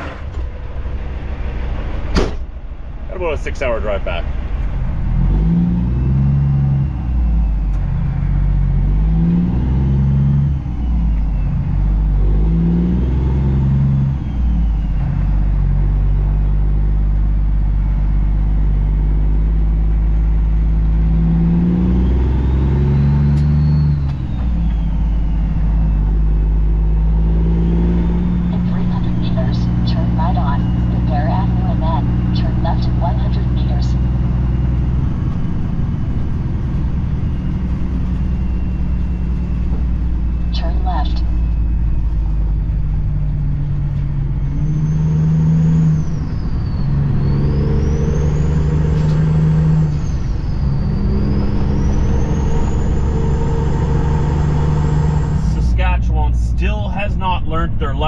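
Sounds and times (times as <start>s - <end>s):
truck diesel engine shifting gears: 0.0s - 58.0s.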